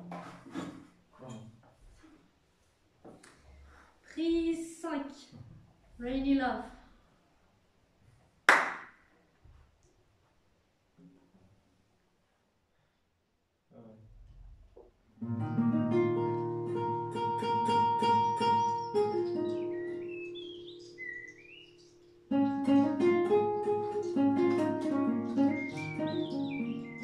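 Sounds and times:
hand clap: 8.5 - 9.0
acoustic guitar chord ringing: 15.2 - 27.0
bird chirping: 17.7 - 27.0.

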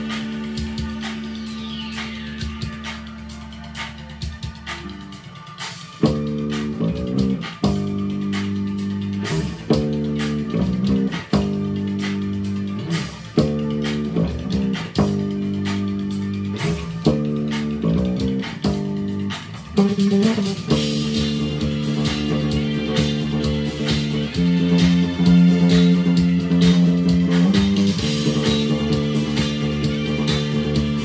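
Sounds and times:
electric bass guitar line: 0.0 - 31.0
pop-rock backing track: 0.0 - 31.0.

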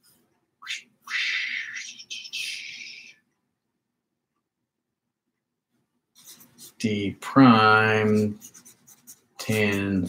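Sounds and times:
marker squeaking on paper: 1.1 - 3.2, 6.2 - 7.0, 7.8 - 10.0.

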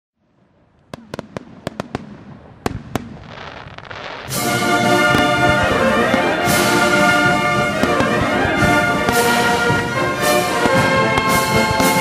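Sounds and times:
fireworks bursting: 0.3 - 12.0
rising hiss with crackling: 0.6 - 12.0.

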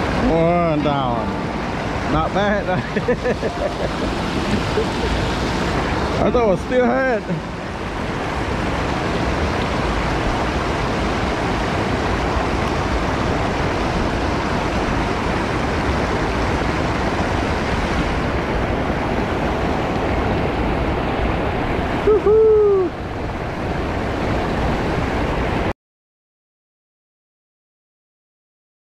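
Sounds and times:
whitewater rushing over a weir: 0.0 - 25.7.

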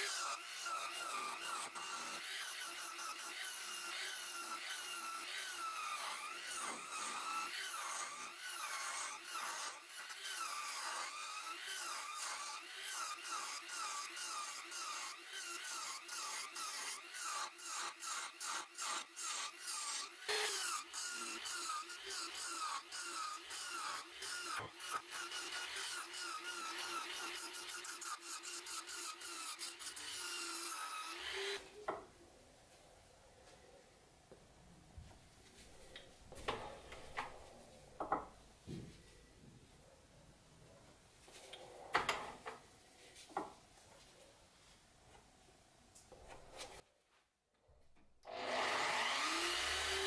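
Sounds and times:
turning tool scraping wood on lathe: 0.0 - 31.7
lathe whine: 48.3 - 50.0.

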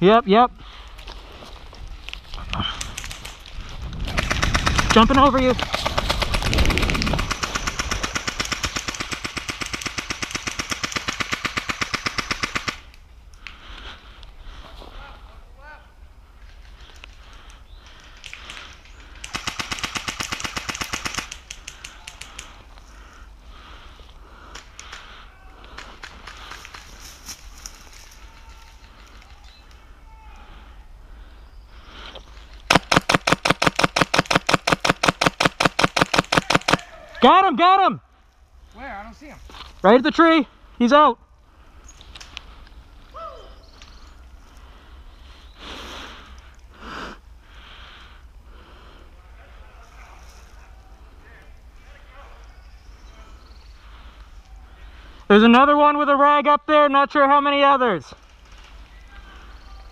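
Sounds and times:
airsoft guns firing bursts: 4.1 - 12.9, 19.2 - 22.4, 32.7 - 36.8.

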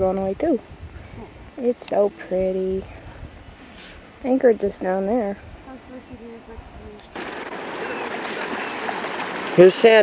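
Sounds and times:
river water rushing: 7.1 - 10.0.

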